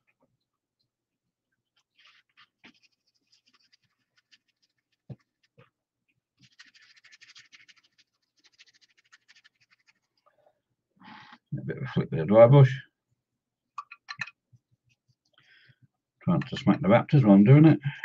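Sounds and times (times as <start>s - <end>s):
paintbrush scratching: 1.8s - 5.8s, 6.4s - 10.2s.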